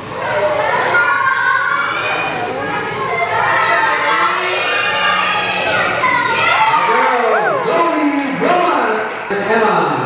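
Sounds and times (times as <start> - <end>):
spectators cheering and shouting: 0.0 - 9.6
overlapping voices: 6.8 - 9.6.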